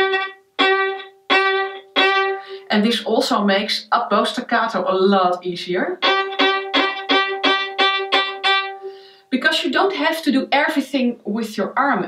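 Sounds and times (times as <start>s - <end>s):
violin bowing short strokes: 0.0s - 2.7s, 6.0s - 9.0s.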